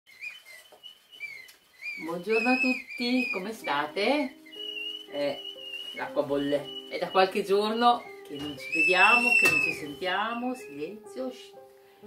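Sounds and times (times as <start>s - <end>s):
kettle whistling: 0.1s - 10.7s.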